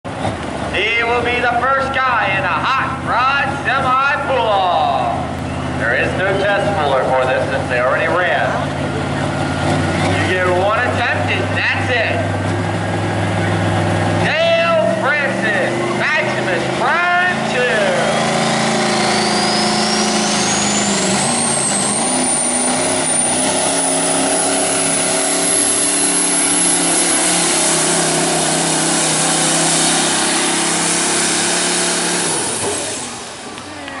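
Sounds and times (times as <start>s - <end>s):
diesel truck engine under load: 0.0s - 34.0s
high rising whine: 12.9s - 33.9s.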